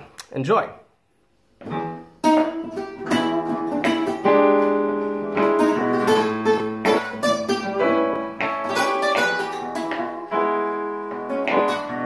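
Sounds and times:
blues guitar playing: 1.6s - 12.0s.

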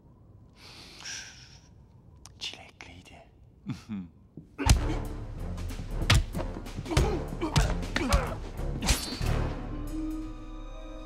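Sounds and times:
man whispering: 0.8s - 4.2s.

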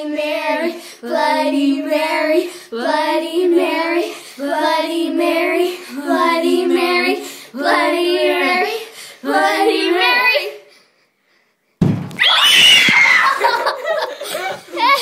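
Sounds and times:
high-pitched screaming: 12.2s - 13.4s.

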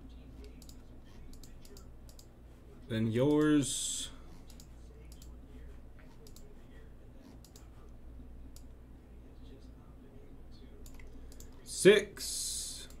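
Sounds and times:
faint low hum: 0.0s - 13.0s
computer mouse clicking: 0.4s - 2.3s, 4.3s - 5.4s, 6.0s - 6.5s, 7.2s - 7.7s, 10.8s - 11.6s.

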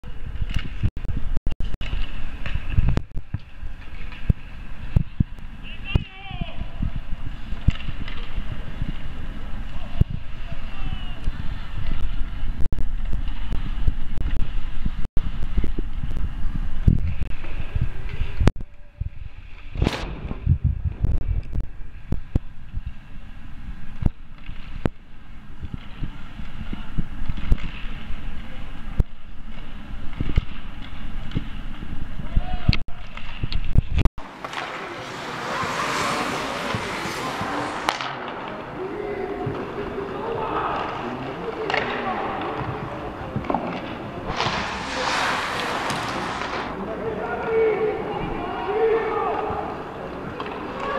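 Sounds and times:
hockey sticks and puck clacking: 1.8s - 5.2s, 7.4s - 12.3s, 24.0s - 31.8s, 32.7s - 46.8s, 48.7s - 50.9s
low rumble: 18.6s - 23.9s, 44.1s - 47.2s.

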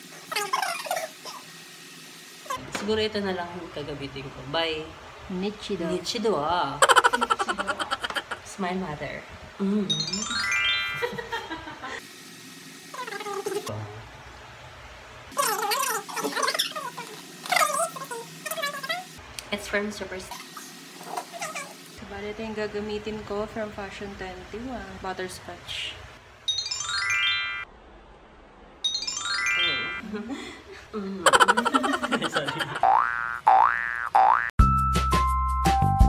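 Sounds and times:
animal high-pitched wavering calls: 15.3s - 19.2s, 21.0s - 21.8s.

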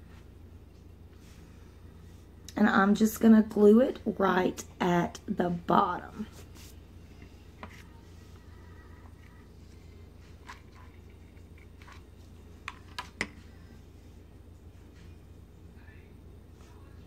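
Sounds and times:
low room hum: 0.0s - 17.0s.

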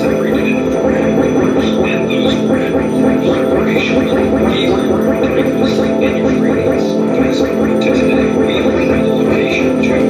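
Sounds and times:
distorted electronic noise music: 0.0s - 10.0s
low drone tones: 0.0s - 10.0s.

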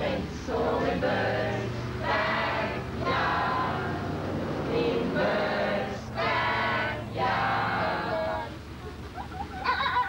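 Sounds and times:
group of people singing: 0.0s - 8.6s.

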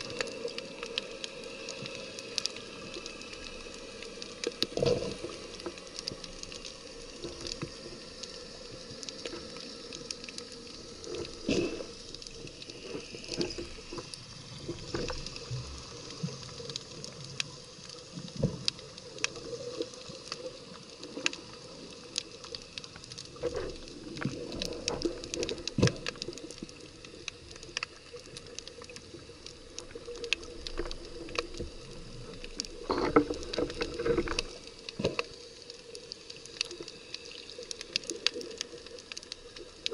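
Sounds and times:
muffled underwater wash: 0.0s - 39.9s.

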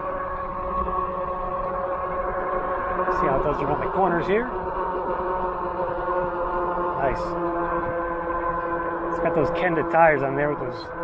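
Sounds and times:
electric motor whining: 0.0s - 11.0s
wind rumble on microphone: 0.0s - 11.0s.

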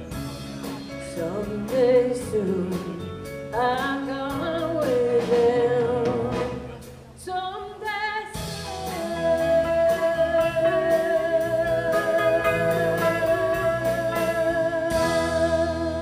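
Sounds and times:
steady drum beat: 0.0s - 7.1s, 8.4s - 16.0s
strummed guitar chords: 8.6s - 16.0s.

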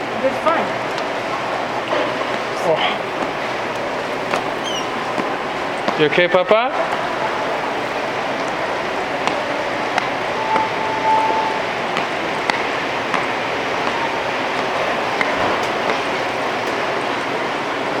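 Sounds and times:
rushing noise: 10.2s - 12.9s
steady beep: 10.3s - 12.4s.

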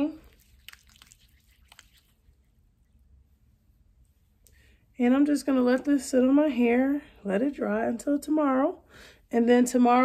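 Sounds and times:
hair cream squishing in palms: 0.1s - 3.2s.

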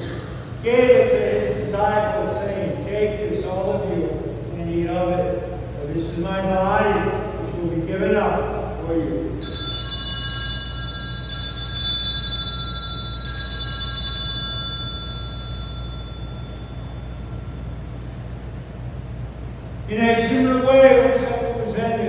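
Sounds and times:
small altar bells ringing: 9.4s - 18.8s.

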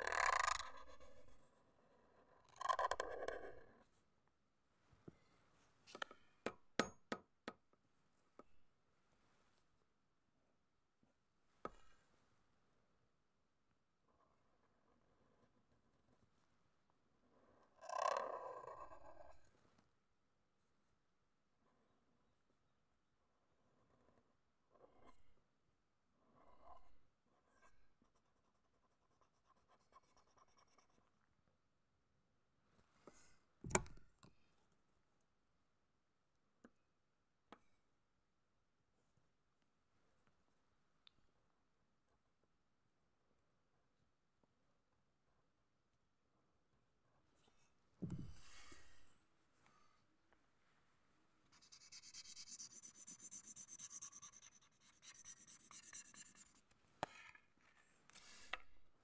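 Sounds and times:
marker scratching on paper: 28.0s - 31.1s, 51.5s - 57.3s.

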